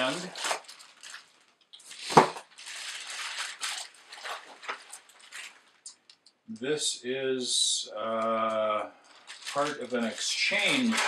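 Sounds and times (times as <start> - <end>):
bubble wrap crinkling: 0.0 - 6.2, 8.1 - 11.0
sharp crackle: 0.0 - 6.4, 8.0 - 11.0.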